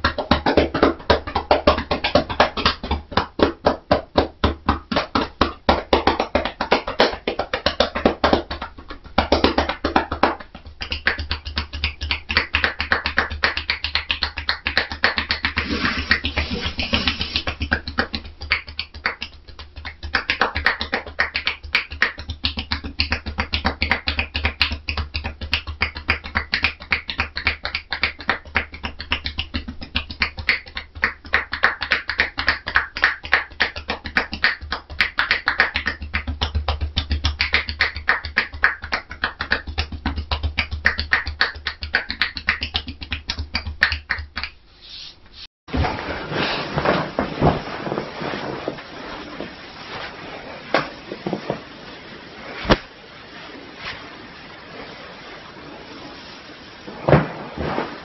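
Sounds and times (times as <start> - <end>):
rapid slapping hand taps: 0.0 - 44.6.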